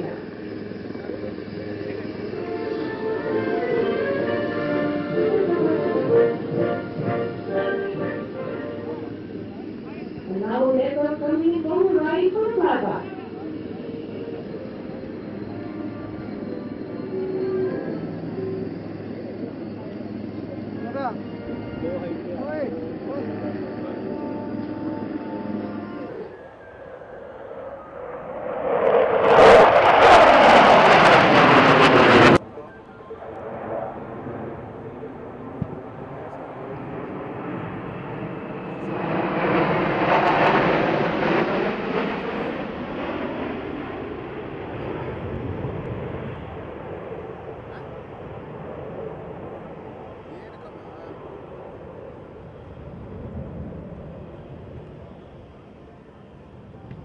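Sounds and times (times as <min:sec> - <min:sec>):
fighter jets passing: 0:00.0 - 0:57.0
jet formation flying over: 0:00.0 - 0:57.0.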